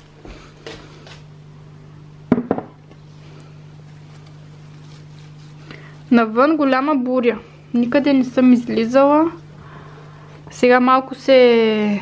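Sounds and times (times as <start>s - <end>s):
steady low hum: 0.0s - 12.0s
sharp knocks on glass: 2.3s - 2.7s.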